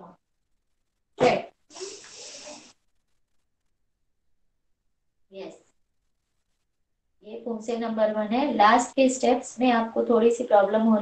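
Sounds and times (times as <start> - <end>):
breathy exhaling: 1.7 - 2.7.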